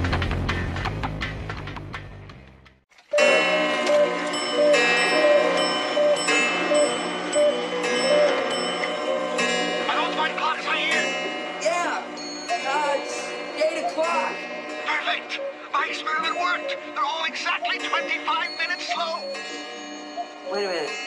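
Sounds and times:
clocks chiming: 3.1s - 21.0s.

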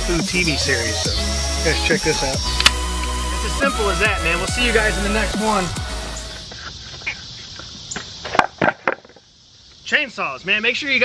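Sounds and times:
chainsaw cutting wood: 2.5s - 3.3s.

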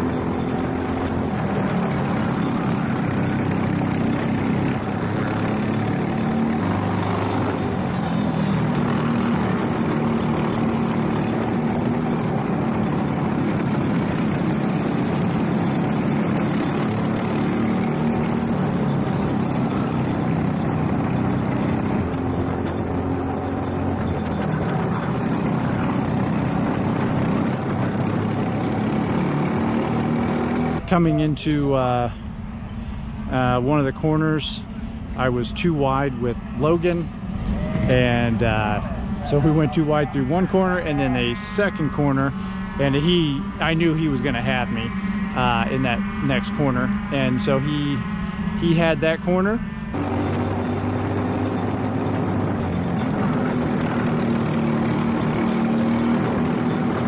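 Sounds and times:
kart engine racing: 0.0s - 31.0s, 37.3s - 57.0s
other kart engines: 0.0s - 57.0s.

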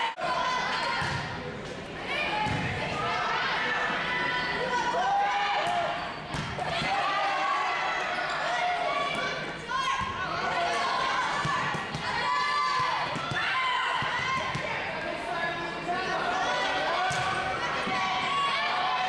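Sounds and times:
players calling and shouting: 0.0s - 19.0s.

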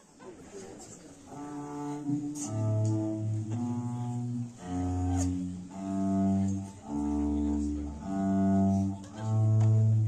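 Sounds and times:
murmur of voices: 0.0s - 10.0s
bowed string ensemble: 1.2s - 10.0s.

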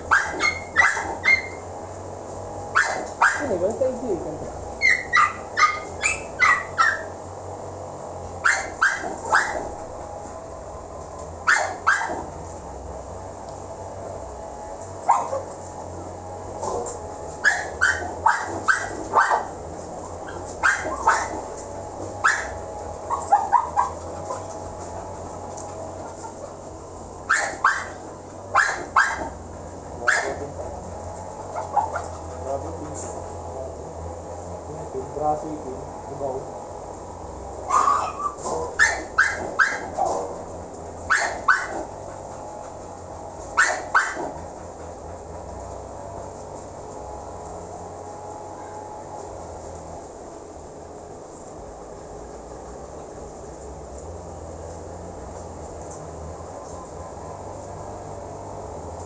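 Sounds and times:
dogs barking: 0.0s - 1.8s, 2.7s - 3.7s, 4.8s - 7.2s, 8.4s - 10.0s, 11.4s - 12.4s, 15.0s - 15.6s, 16.5s - 33.5s, 37.6s - 46.0s, 56.3s - 58.0s.

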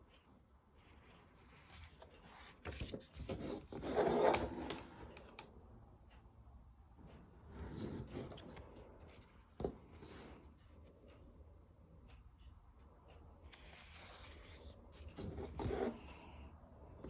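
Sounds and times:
paper pages turning: 1.0s - 5.4s, 13.5s - 16.3s.

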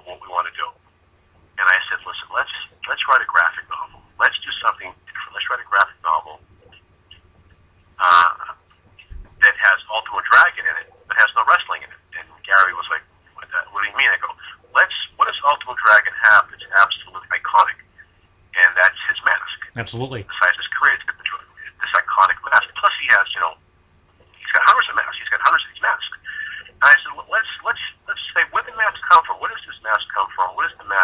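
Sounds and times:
man talking over telephone: 1.6s - 6.4s, 8.0s - 8.5s, 9.4s - 17.8s, 18.6s - 23.6s, 24.4s - 31.0s.

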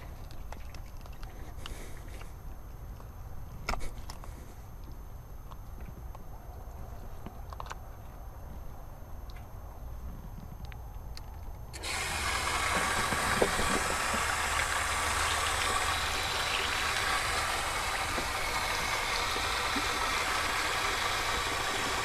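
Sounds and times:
garden hose spraying water: 11.8s - 22.0s.

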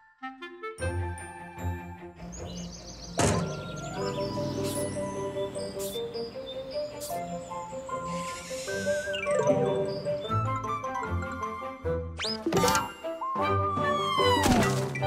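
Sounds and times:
cartoon background music: 0.0s - 15.0s
sudden thunk: 3.2s - 3.7s.

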